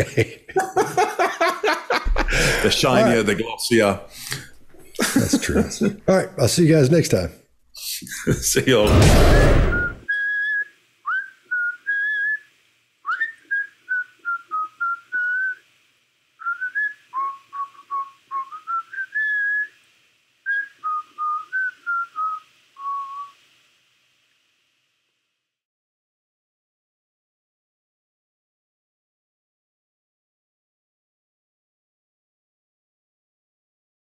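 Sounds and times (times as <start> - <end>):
person whistling a tune: 9.7 - 12.5, 13.1 - 15.6.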